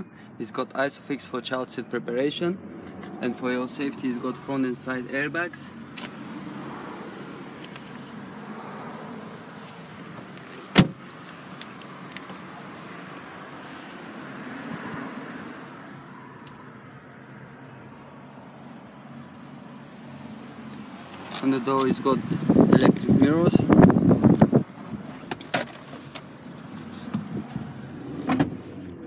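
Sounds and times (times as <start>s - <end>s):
car cabin background noise: 0.7s - 29.0s.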